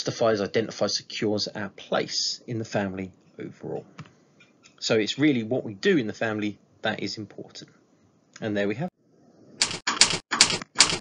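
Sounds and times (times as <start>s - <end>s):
typewriter clacks: 9.6s - 11.0s.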